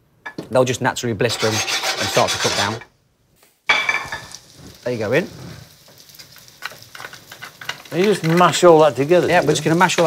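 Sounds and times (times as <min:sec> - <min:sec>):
vegetables sizzling in a frying pan: 0:03.6 - 0:10.0.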